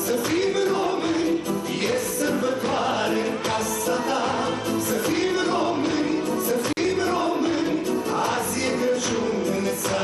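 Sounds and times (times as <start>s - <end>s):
choir-like voices: 0.0s - 10.0s
live band playing: 0.0s - 10.0s
man singing into microphone: 0.0s - 10.0s.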